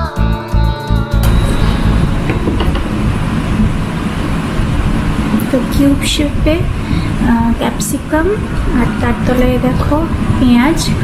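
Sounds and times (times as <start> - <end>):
steady low rumble: 1.2 - 11.0.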